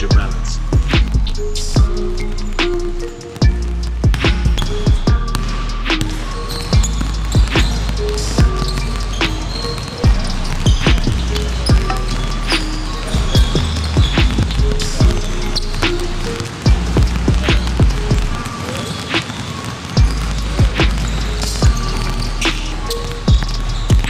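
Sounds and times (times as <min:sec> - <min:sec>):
music with heavy bass: 0:00.0 - 0:18.6, 0:20.0 - 0:24.0
basketballs bouncing on gym floor: 0:00.0 - 0:24.0.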